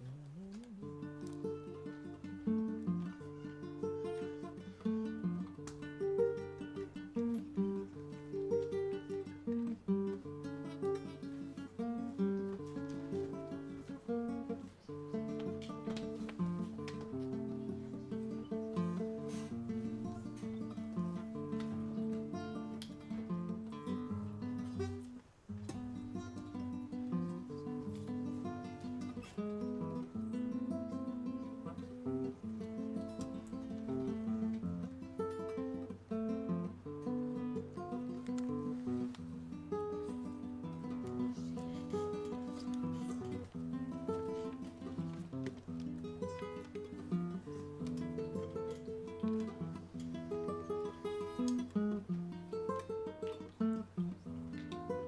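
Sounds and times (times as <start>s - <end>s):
acoustic guitar fingerstyle: 0.0s - 55.0s.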